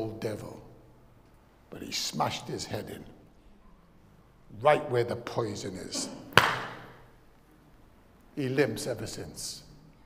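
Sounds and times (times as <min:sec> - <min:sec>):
sharp smack with room echo: 0:06.3 - 0:07.0.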